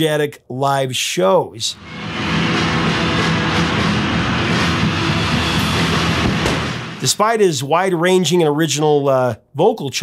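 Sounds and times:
live hard rock music: 1.8 - 7.1.

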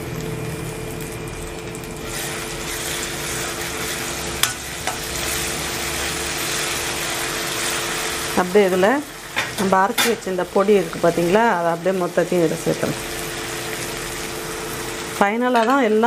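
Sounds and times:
food sizzling in a pan: 0.0 - 16.0.

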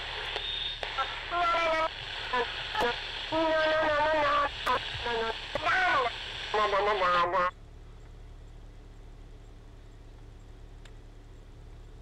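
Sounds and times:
radio static hiss: 0.0 - 7.6
voices from radio: 0.0 - 7.6.

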